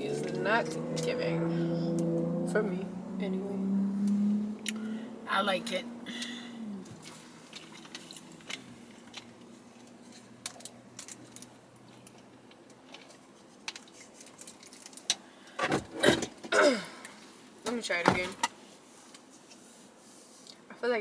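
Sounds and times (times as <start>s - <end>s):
faint car cabin hum: 0.0s - 10.0s
woman clearing her throat: 16.0s - 17.0s.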